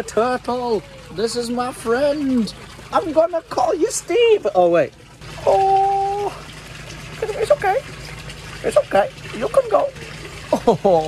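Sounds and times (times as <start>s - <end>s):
water lapping and trickling: 0.0s - 11.0s.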